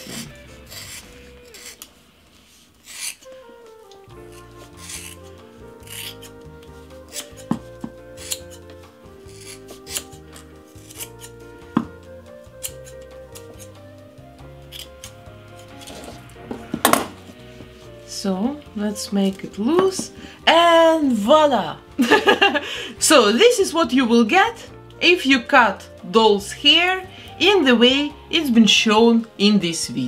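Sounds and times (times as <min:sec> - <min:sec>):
scissors snipping hair: 0:00.0 - 0:01.9, 0:02.8 - 0:03.3, 0:03.9 - 0:08.7, 0:09.3 - 0:11.4, 0:12.5 - 0:13.8, 0:14.7 - 0:16.0
background music: 0:00.0 - 0:30.0.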